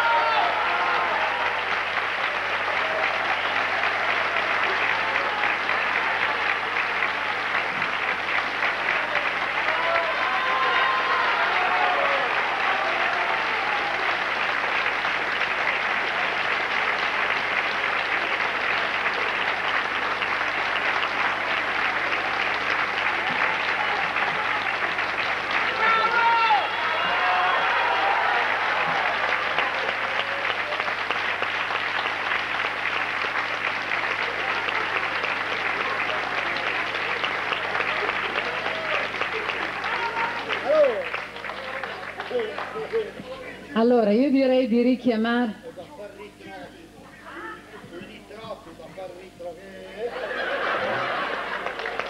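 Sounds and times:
audience applauding: 0.0s - 43.9s, 50.0s - 52.0s.

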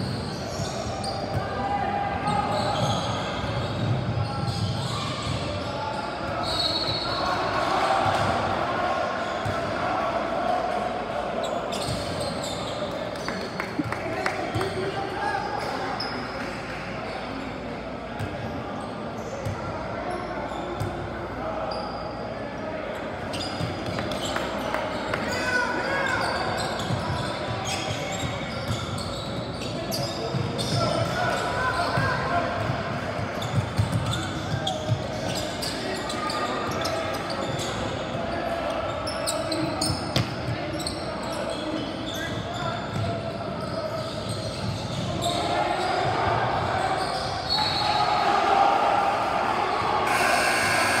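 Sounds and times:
sneaker squeaks: 0.0s - 1.6s, 2.2s - 8.3s, 11.4s - 17.5s, 18.2s - 48.2s, 50.1s - 51.0s
people talking and calling out: 34.0s - 51.0s.

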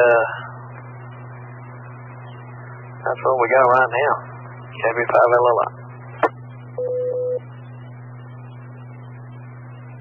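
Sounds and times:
radio channel hum and hiss: 0.0s - 10.0s
man's voice over two-way radio: 4.8s - 5.7s.

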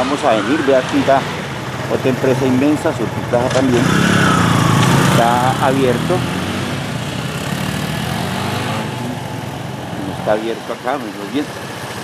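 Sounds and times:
motorcycle engine passing by: 0.3s - 12.0s.

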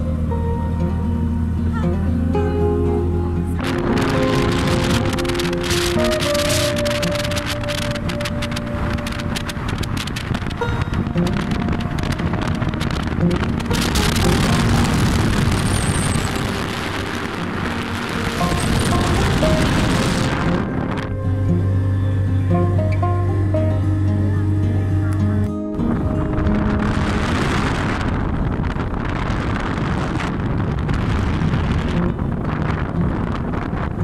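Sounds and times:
background music: 0.0s - 28.8s
wind rushing on microphone: 3.3s - 23.9s, 25.1s - 34.0s.

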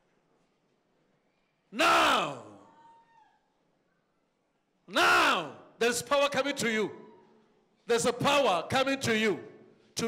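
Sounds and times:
man shouting over microphone: 1.7s - 2.7s, 4.9s - 7.2s.

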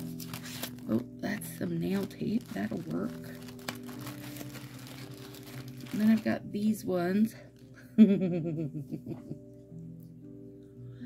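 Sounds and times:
plastic and foil crinkling: 0.0s - 6.5s.

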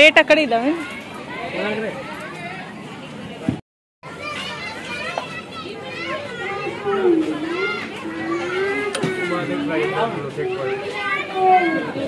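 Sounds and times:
adults and children chattering: 0.0s - 12.0s.

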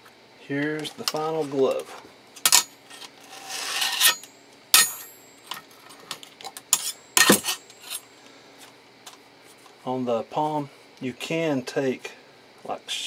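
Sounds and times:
steel blades scraping steel plate: 2.5s - 5.2s, 6.7s - 8.0s
sharp metallic clinks: 4.0s - 5.3s.

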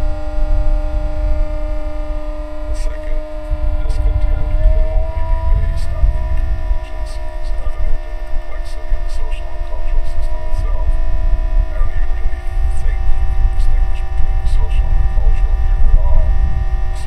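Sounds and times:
heavy low rumble: 0.0s - 17.0s
steady hum tones: 0.0s - 17.0s.

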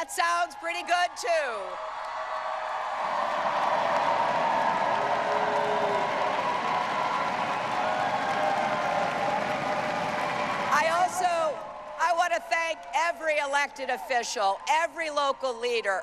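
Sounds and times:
crowd cheering and clapping: 0.0s - 16.0s.

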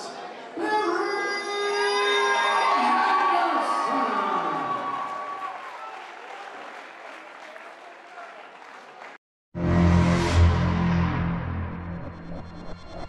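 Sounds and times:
crowd applauding and cheering: 2.2s - 9.2s.

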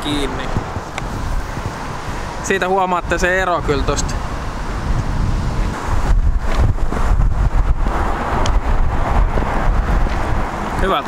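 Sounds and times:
tyres on road: 0.0s - 11.0s
wind buffeting microphone: 0.0s - 11.0s.

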